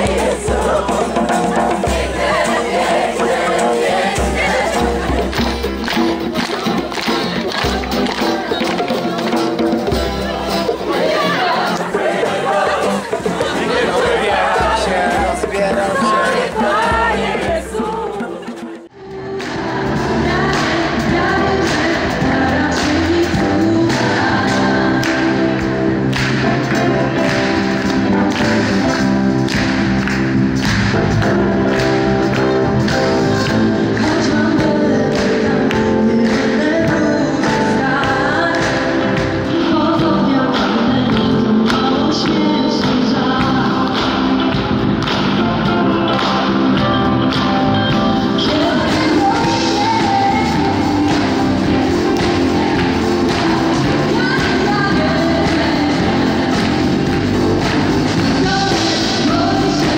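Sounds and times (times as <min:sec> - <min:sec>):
live band playing: 0:00.0 - 0:59.9
people clapping along: 0:00.0 - 0:59.9
person singing: 0:10.5 - 0:29.2, 0:31.2 - 0:44.7, 0:48.0 - 0:59.9.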